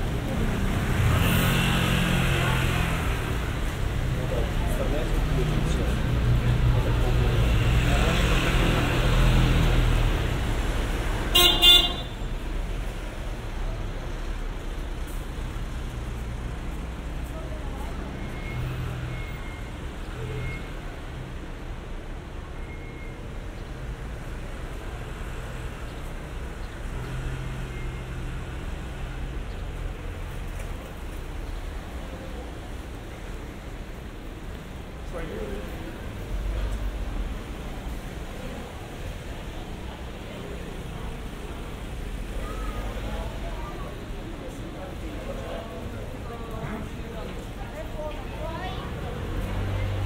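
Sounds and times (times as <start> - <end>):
vehicle rumbling past: 0.0 - 11.3
passers-by: 0.0 - 50.0
street traffic hum: 0.0 - 50.0
vehicle horn toot: 11.3 - 12.3.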